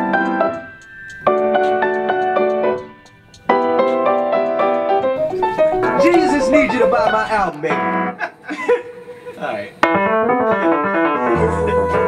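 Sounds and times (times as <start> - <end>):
keyboard piano chords: 0.0 - 8.4, 9.7 - 12.0
person singing: 11.2 - 12.0.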